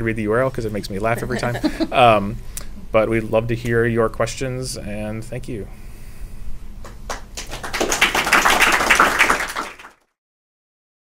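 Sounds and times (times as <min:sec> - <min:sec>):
audience applauding: 0:06.9 - 0:10.1.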